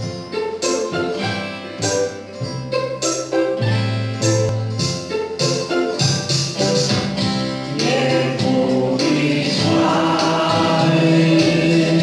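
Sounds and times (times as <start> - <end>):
musical accompaniment: 0.0 - 12.0
choir singing: 7.7 - 12.0.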